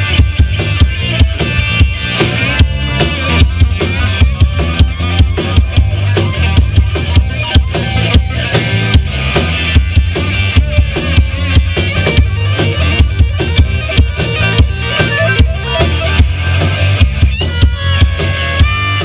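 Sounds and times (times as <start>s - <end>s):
drum kit driving beat: 0.0s - 19.0s
electric bass: 0.0s - 19.0s
electric guitar: 0.0s - 19.0s.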